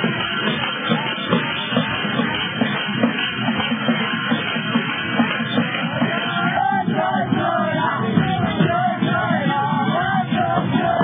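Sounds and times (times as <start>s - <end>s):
dance music with steady beat: 0.0s - 11.0s.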